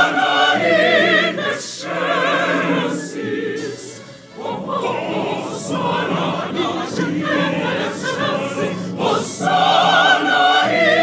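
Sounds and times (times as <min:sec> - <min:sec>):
choir singing with orchestra: 0:00.0 - 0:11.0.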